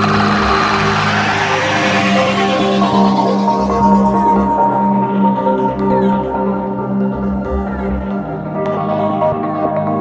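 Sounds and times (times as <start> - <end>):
noise sweep: 0.0 - 6.5
held synthesizer chords: 0.0 - 10.0.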